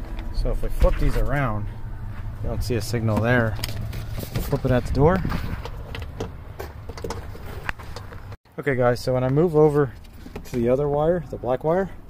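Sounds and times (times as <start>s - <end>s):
low steady rumble: 0.0s - 12.0s.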